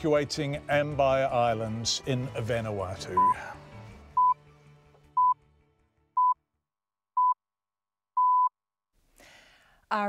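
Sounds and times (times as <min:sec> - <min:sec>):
radio time signal beep: 0:03.2 - 0:03.4, 0:08.2 - 0:08.5
faint breath: 0:09.1 - 0:09.9.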